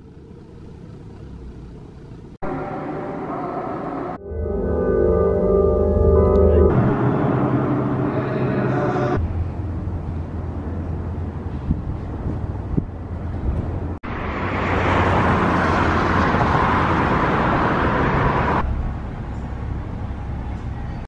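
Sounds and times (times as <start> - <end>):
vehicle interior low rumble: 0.0 - 3.5, 5.2 - 14.0, 16.0 - 21.0
rushing road and wind noise: 9.2 - 21.0.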